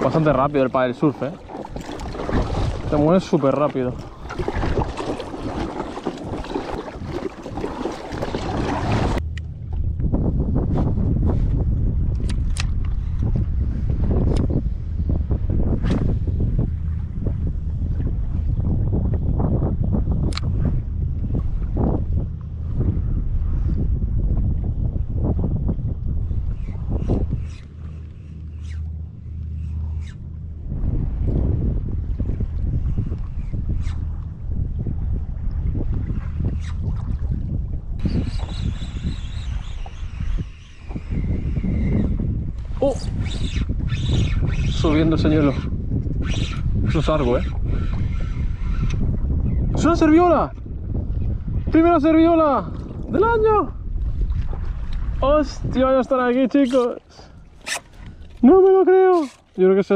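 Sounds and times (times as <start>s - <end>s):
small waves lapping: 0.0s - 9.2s
paddle splashing water: 0.0s - 9.8s, 53.9s - 55.2s
wind rumble on microphone: 0.0s - 59.9s.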